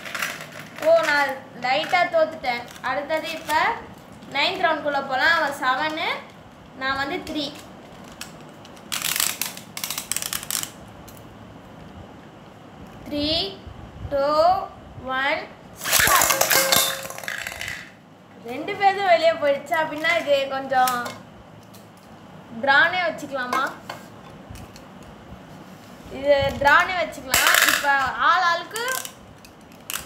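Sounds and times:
spinning tops clicking on metal: 15.8 - 18.0, 27.4 - 28.0
plastic clicking and rattling: 28.7 - 30.0.

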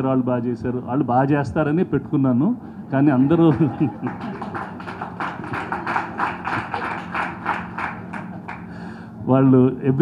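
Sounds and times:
audience clapping in rhythm: 3.4 - 8.9.

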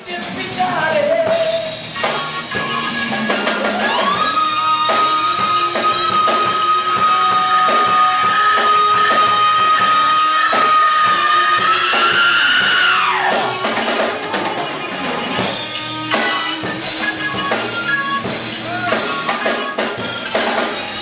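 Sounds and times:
drum kit beat: 0.0 - 21.0.

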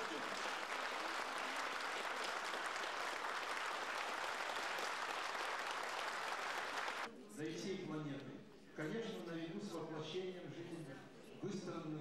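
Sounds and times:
audience applauding: 0.0 - 7.1.

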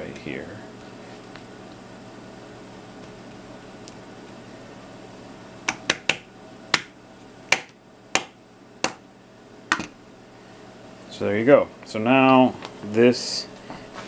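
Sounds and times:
low room hum: 0.0 - 14.0.

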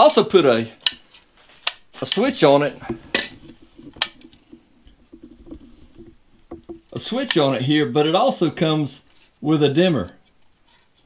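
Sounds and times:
handling noise and small ticks: 0.8 - 7.5.

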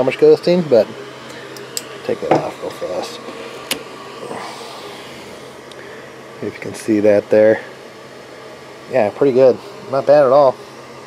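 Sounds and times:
cooling fans humming: 0.0 - 11.0.

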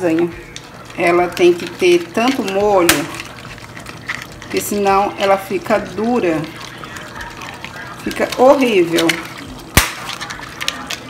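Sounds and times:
pasta sheet cracking: 0.0 - 11.0.

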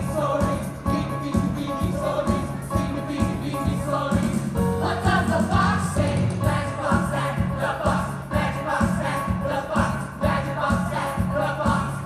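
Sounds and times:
group of voices singing: 0.0 - 12.0
live band playing dance song: 0.0 - 12.0.

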